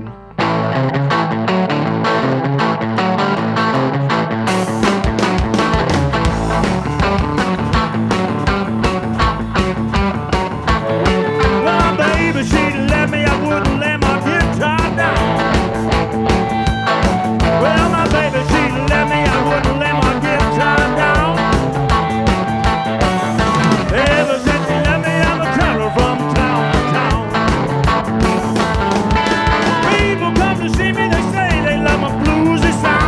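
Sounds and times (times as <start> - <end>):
electric blues band playing: 0.0 - 33.0
harmonica bending lines: 4.6 - 33.0.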